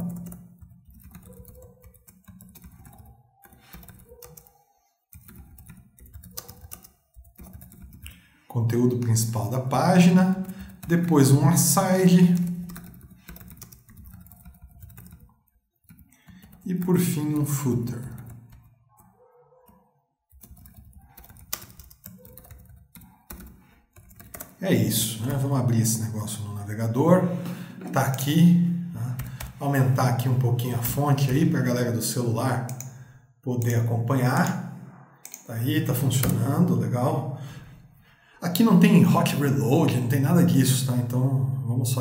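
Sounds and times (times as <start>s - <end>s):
typing on computer keyboard: 0.0s - 26.0s, 27.8s - 31.6s, 32.6s - 33.0s, 35.2s - 36.7s.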